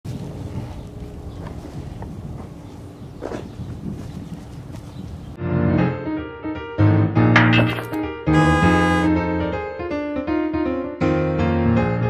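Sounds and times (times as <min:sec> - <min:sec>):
wind buffeting microphone: 0:00.1 - 0:05.4.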